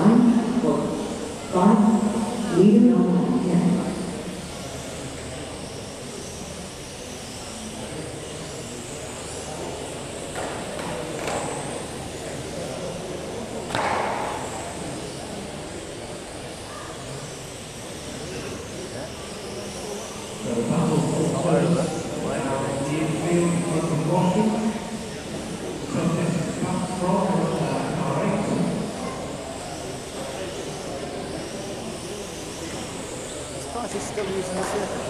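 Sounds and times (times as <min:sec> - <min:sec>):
sharp knock: 0:13.7 - 0:14.4.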